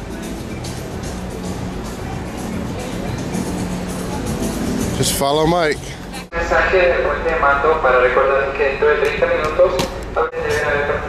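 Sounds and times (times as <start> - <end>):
indistinct voices talking: 1.2 - 11.0.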